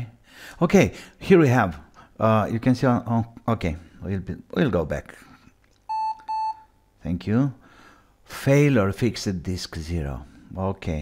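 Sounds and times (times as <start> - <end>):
short electronic beeps: 5.9 - 6.8.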